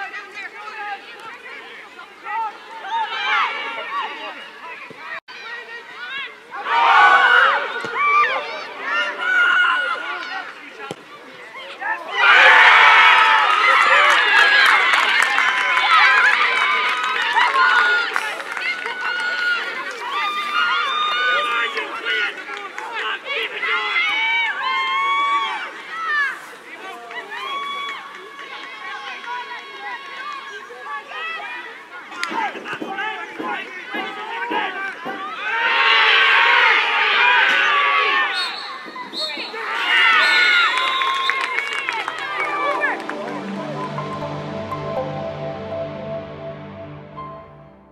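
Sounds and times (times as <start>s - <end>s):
crowd shouting and cheering: 0.0s - 47.9s.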